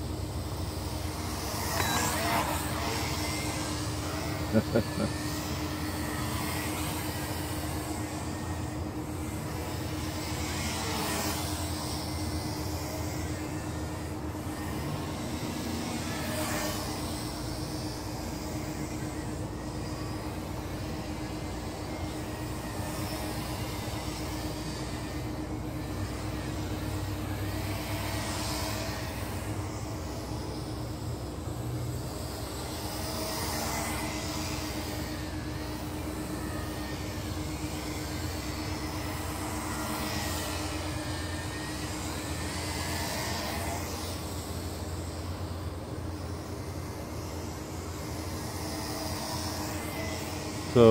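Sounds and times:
drone propellers whirring: 0.0 - 50.9.

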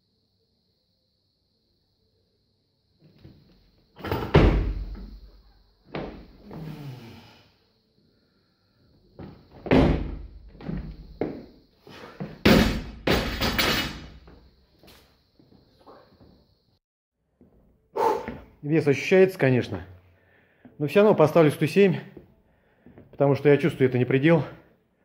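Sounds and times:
barbell heavy thud: 9.6 - 10.4, 12.4 - 14.2
barbell crashing onto platform: 12.4 - 14.2.

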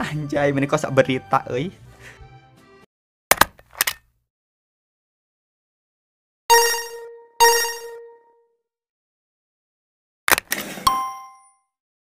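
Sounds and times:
bright bell-like chime: 10.9 - 11.6.

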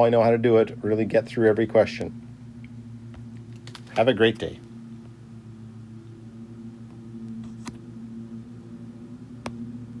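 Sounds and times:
steady low hum: 0.0 - 10.0
sharp clicks: 3.4 - 4.0.

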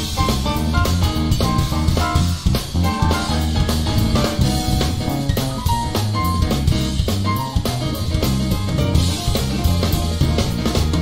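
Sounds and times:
drum kit: 0.0 - 11.0
electric bass: 0.0 - 11.0.

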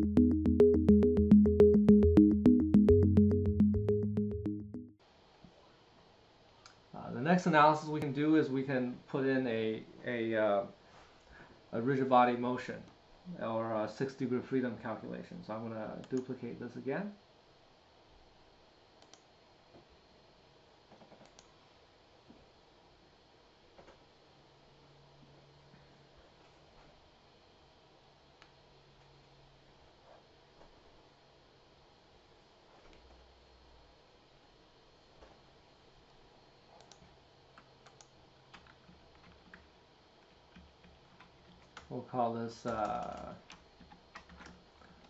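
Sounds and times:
computer mouse clicks: 19.0 - 19.2, 20.9 - 21.5, 36.8 - 39.7, 42.7 - 45.0
keyboard and mouse clicks: 36.8 - 37.0, 42.7 - 45.0.

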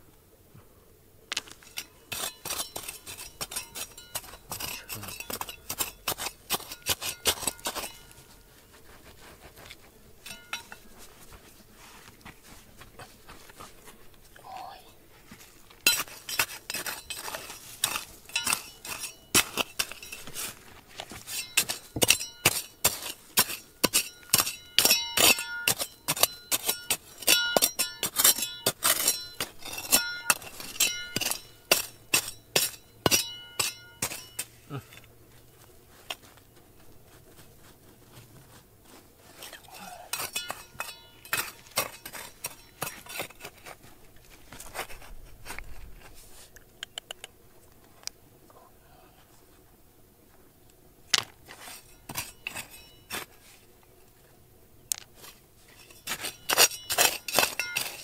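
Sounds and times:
trowel scraping gravelly soil: 1.3 - 46.7, 51.2 - 54.3, 54.9 - 58.0.

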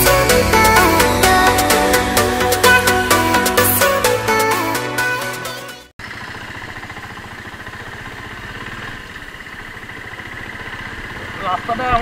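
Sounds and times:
electronic dance music: 0.0 - 5.9
motorcycle engine running: 6.0 - 12.0.

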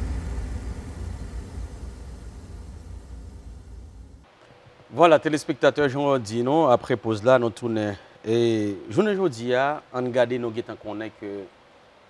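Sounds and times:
noisy low rumble: 0.0 - 4.2.

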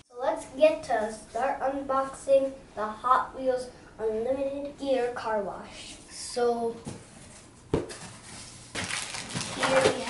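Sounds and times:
plastic bag rustling: 7.2 - 10.0
cardboard flap knock: 7.7 - 8.0.

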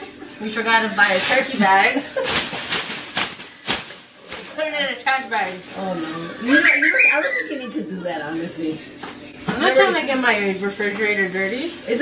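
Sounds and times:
plastic bag crinkling rustles: 0.2 - 7.6, 10.3 - 12.0.

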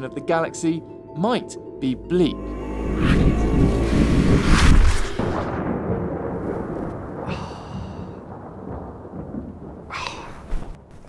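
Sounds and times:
low thunder-like rumble: 2.3 - 10.8.

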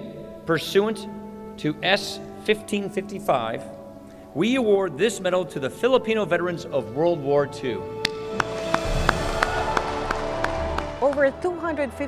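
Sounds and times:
background music with steady beat: 7.4 - 12.0
applause: 8.3 - 12.0.

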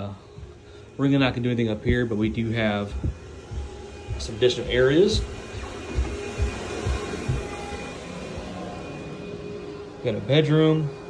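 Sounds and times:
distant vacuum cleaner drone: 0.0 - 11.0
soft footstep thump: 1.8 - 7.8.

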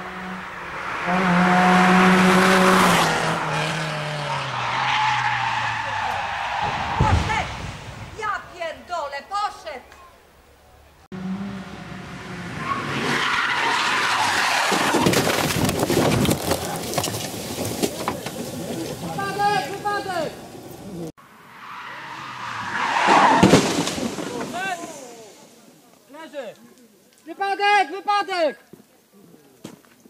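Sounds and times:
rally car racing past: 0.0 - 6.1
tyres skidding: 0.0 - 8.7, 10.0 - 26.1
gravel crackling: 13.4 - 27.3.

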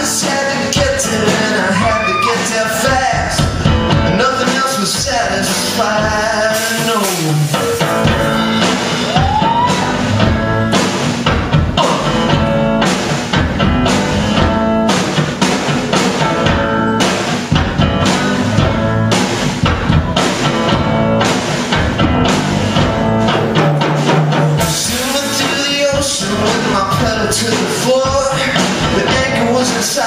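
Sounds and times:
drum beat: 0.0 - 30.0
electric guitar playing: 7.5 - 24.0.

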